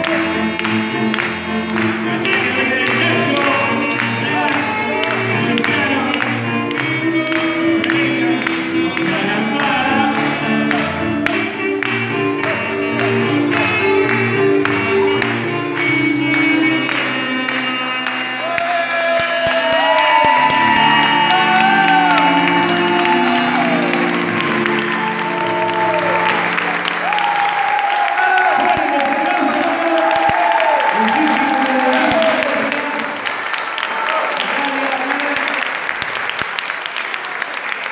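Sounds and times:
alto saxophone: 0.0 - 33.4
keyboard chords: 0.0 - 33.5
audience applause: 0.0 - 37.9
audience voices: 0.0 - 37.9.

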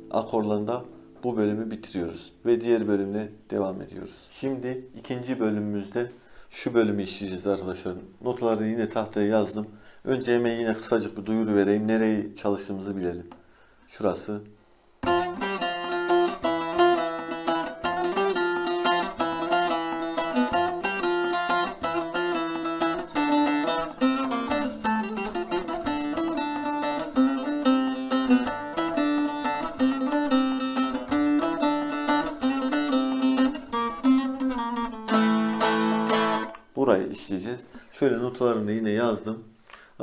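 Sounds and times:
long-neck lute played with plectrum: 0.0 - 2.8, 15.0 - 36.7.

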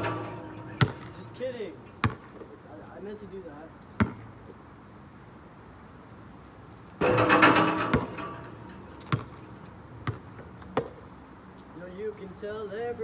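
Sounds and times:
basketball bouncing: 0.0 - 1.2, 2.0 - 2.4, 4.0 - 4.2, 7.0 - 9.4, 10.0 - 11.0
ball rattling on rim and backboard: 0.0 - 2.3, 7.0 - 10.4.

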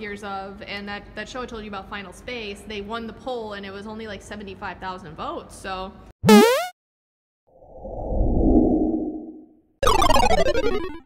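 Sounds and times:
low whoosh: 7.6 - 9.5.

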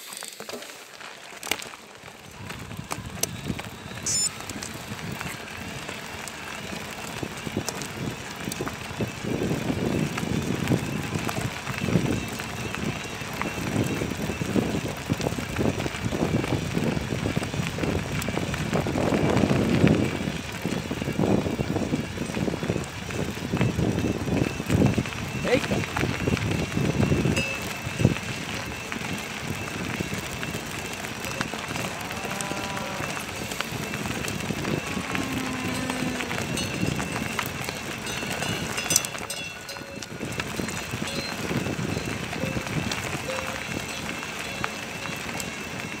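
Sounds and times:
bicycle rattling on gravel: 0.0 - 46.0
wind buffeting microphone: 2.3 - 46.0.

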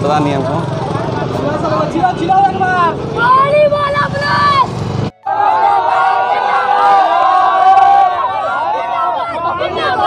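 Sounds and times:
motorcycle engines running: 0.0 - 5.1
people's voices: 0.0 - 10.0
road traffic: 0.0 - 10.0.

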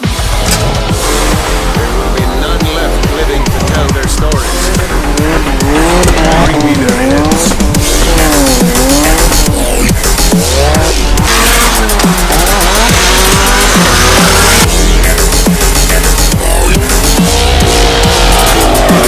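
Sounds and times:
car engines revving: 0.0 - 19.0
electronic music with heavy bass: 0.0 - 19.0.

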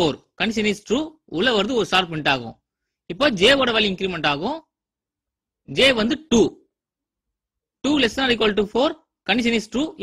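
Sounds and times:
man speaking: 0.0 - 4.8, 5.6 - 6.8, 7.8 - 10.0.

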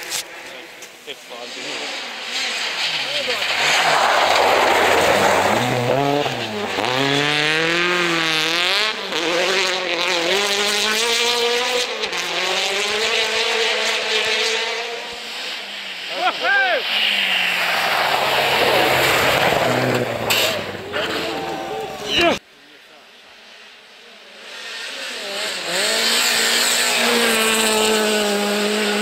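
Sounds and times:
rally car engine revving: 0.0 - 22.4, 23.1 - 29.0.

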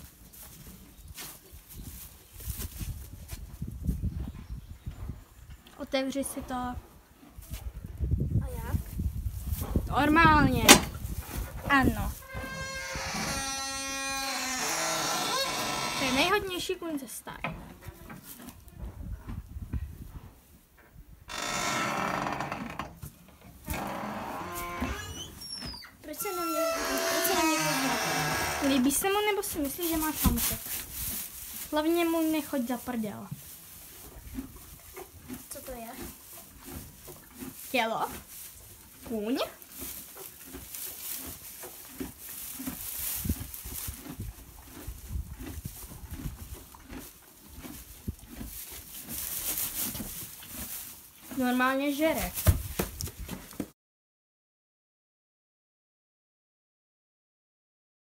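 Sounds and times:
horse calling: 11.7 - 16.6.

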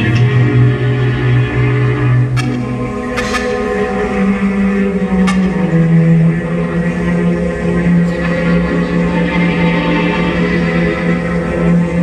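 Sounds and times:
orchestral film music with held notes: 0.0 - 12.0.

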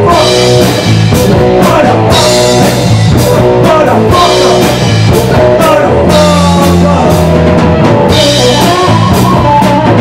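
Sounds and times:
bass guitar: 0.0 - 10.0
drum kit rock rhythm: 0.0 - 10.0
electric guitar: 0.0 - 10.0.

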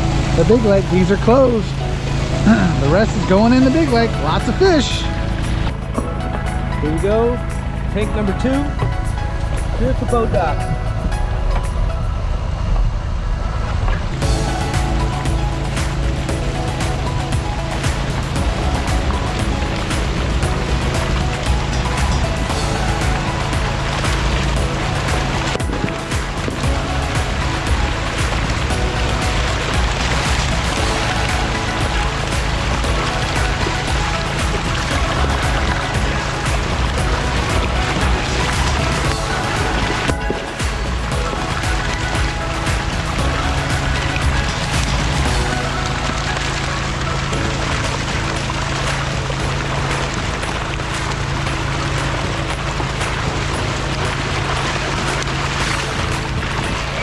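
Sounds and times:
water gushing down a chute: 0.0 - 5.7, 13.6 - 57.0
background music: 0.0 - 57.0.

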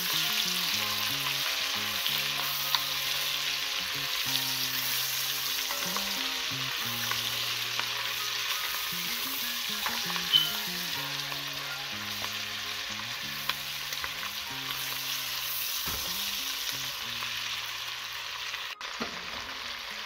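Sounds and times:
meat sizzling in hot fat: 0.0 - 20.0.

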